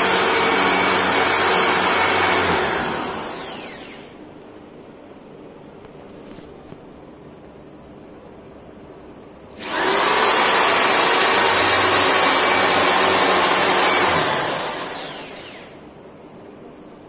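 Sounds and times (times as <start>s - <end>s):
electric drill boring wood: 0.0s - 4.2s, 9.6s - 15.8s.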